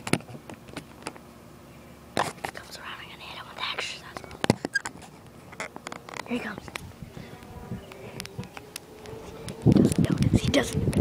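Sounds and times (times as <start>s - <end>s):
person whispering: 2.5s - 4.2s.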